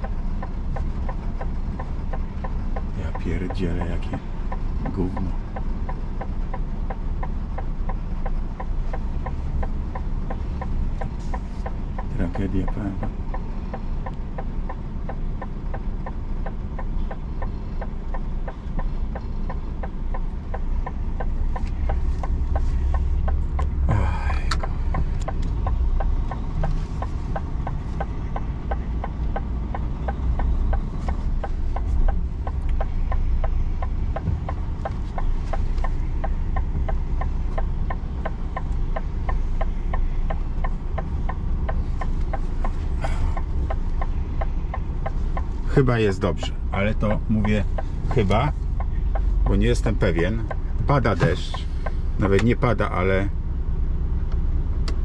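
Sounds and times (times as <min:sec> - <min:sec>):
rain on truck cab: 0:00.0 - 0:52.8
diesel engine idling: 0:00.0 - 0:55.0.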